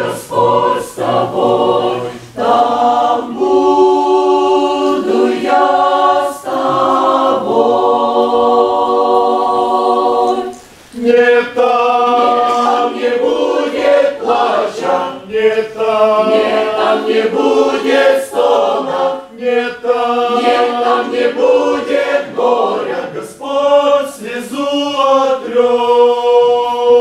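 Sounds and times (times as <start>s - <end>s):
choir singing a hymn: 0.0s - 27.0s.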